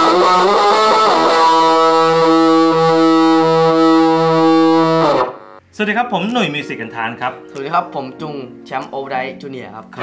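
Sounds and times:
sustained electric guitar note: 0.0 - 5.6.

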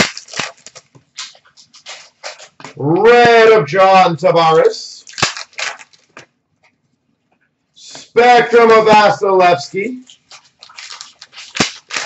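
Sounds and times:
card stock rustling and snapping: 0.0 - 2.7, 5.0 - 6.3, 10.1 - 12.0.

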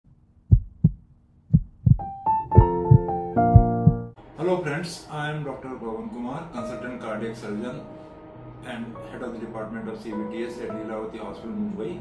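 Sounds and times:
heartbeat thumps: 0.5 - 4.2.

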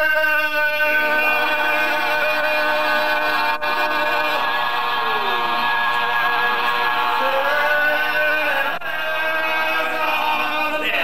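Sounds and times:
men singing devotional chant: 0.0 - 11.0.

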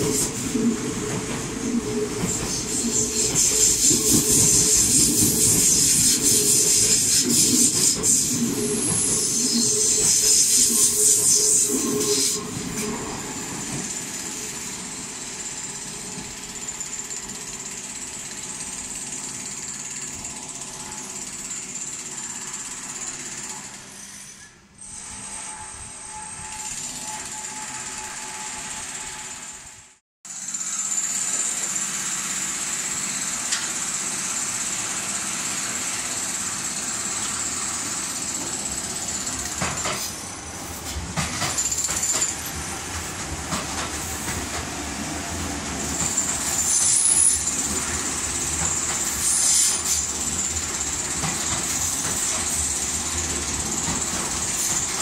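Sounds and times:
electric train rolling past: 0.0 - 55.0.

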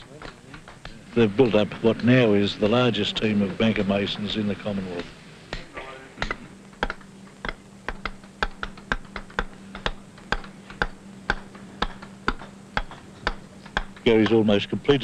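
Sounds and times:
hammer striking chisel on stone: 6.2 - 14.3.

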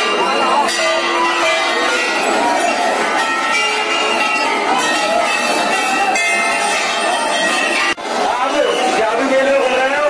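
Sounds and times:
brass bells ringing: 0.0 - 8.0.

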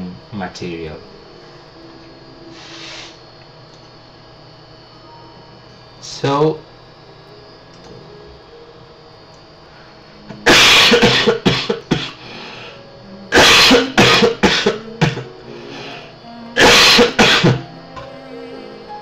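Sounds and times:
man coughing hard: 10.4 - 12.2, 13.3 - 15.3, 16.6 - 17.6.

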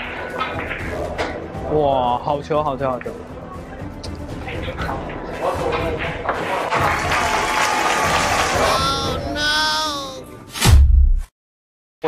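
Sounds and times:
onlookers clapping: 6.6 - 10.0
voices: 8.6 - 10.3.

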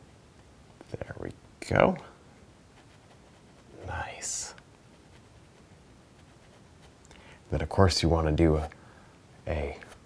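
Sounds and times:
man talking: 0.8 - 2.2, 3.8 - 4.6, 7.5 - 8.8, 9.4 - 10.0.

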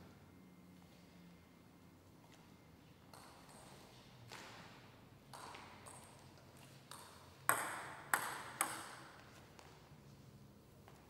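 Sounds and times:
table tennis ball bouncing: 3.1 - 3.8, 5.3 - 6.3, 6.9 - 9.3.

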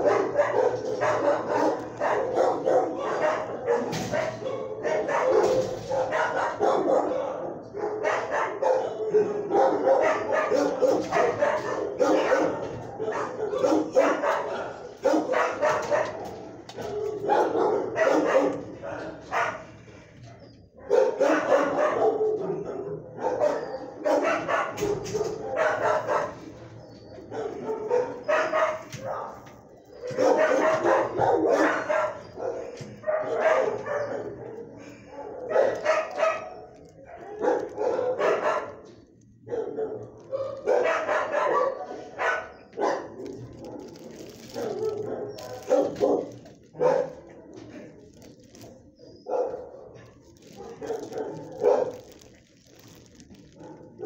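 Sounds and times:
dogs barking: 0.0 - 54.0.

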